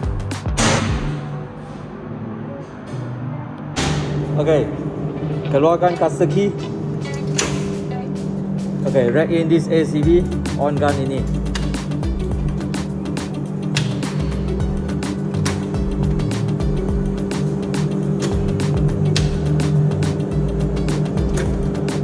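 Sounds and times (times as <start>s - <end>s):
electrical hum: 0.0s - 22.0s.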